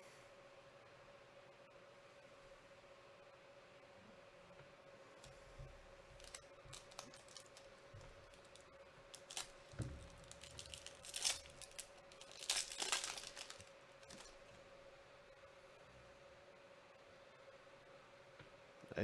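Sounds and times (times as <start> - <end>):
foil wrapper tearing and crinkling: 6.2 - 14.4.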